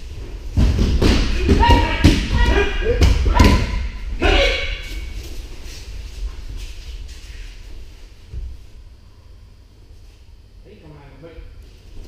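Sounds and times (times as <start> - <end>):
bodies thudding onto mats: 0.5 - 3.9
short shouts: 1.4 - 5.1.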